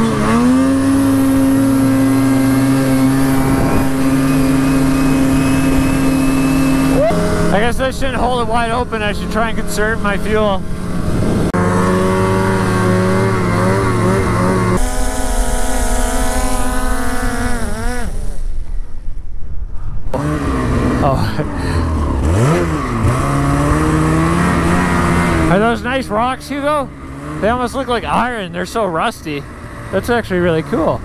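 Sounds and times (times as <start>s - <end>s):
snowmobile engine revving: 0.0s - 19.0s, 20.1s - 31.0s
drone propellers whining: 0.0s - 19.3s.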